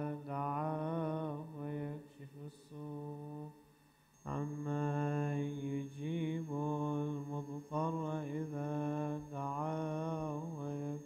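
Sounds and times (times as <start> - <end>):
man chanting religious recitation: 0.0 - 3.6, 4.2 - 11.0.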